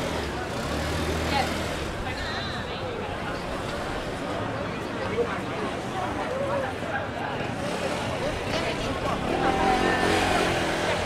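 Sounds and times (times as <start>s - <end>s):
street crowd chatter: 0.0s - 11.0s.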